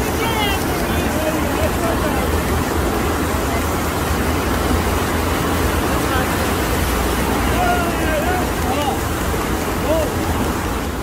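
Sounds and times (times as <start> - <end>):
rushing water with deep rumble: 0.0 - 11.0.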